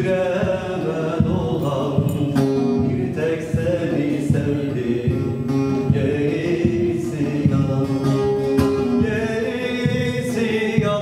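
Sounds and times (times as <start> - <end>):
man singing folk song: 0.0 - 11.0
strummed long-necked lute: 0.0 - 11.0.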